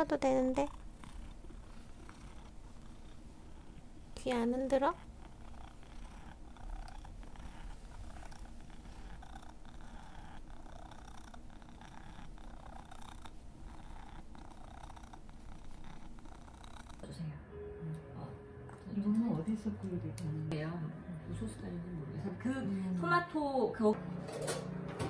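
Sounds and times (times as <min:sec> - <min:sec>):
cat purring: 0:00.0 - 0:18.1.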